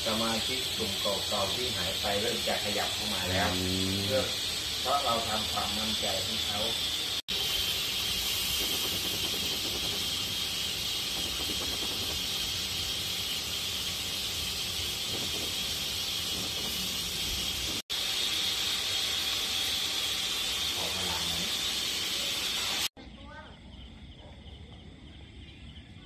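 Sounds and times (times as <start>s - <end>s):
meat sizzling in a wok: 0.0s - 23.0s.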